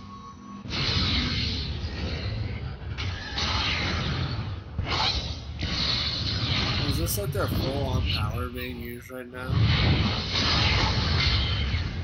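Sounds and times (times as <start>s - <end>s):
rumbling energy blasts: 0.6s - 12.0s.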